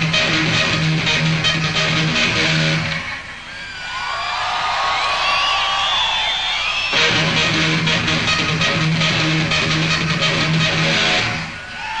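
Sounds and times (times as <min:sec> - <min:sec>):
electric guitar solo: 0:00.0 - 0:03.3, 0:06.9 - 0:12.0.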